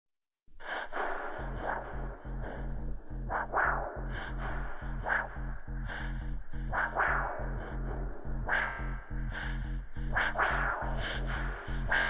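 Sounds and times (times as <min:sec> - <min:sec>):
sampled breathing and gasping: 0:04.0 - 0:07.9.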